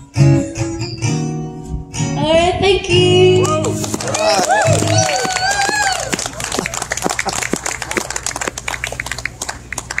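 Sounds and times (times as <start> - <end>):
audience clapping: 3.4 - 10.0.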